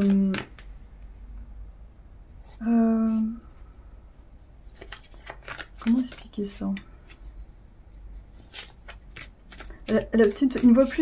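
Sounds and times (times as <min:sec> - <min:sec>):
cards rustling: 0:04.4 - 0:11.0.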